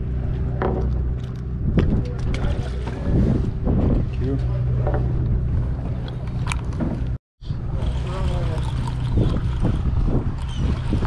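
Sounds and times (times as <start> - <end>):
boat engine droning: 0.0 - 11.0
wind on microphone: 0.0 - 11.0.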